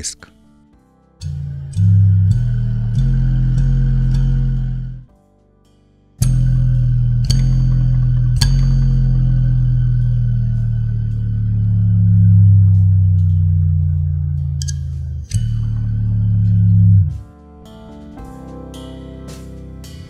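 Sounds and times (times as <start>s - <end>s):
electrical hum sliding in pitch: 1.2s - 5.1s, 6.2s - 17.2s
sharp clicks: 14.6s - 15.6s.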